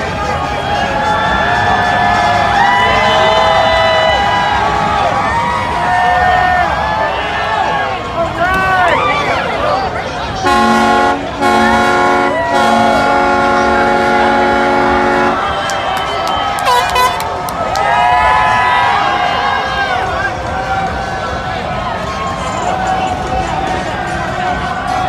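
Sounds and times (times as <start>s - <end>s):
people shouting and cheering: 0.0s - 25.0s
boat horn blasts: 10.4s - 16.0s, 16.6s - 17.3s.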